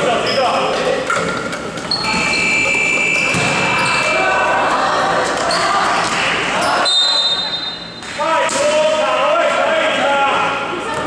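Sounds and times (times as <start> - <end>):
basketball bouncing: 3.2 - 4.1
people shouting: 3.6 - 6.9.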